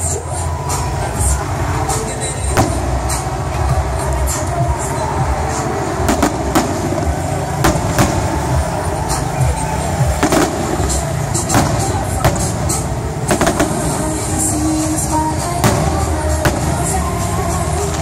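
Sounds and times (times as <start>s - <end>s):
constant low din: 0.0s - 18.0s
fireworks bangs and crackles: 0.0s - 18.0s.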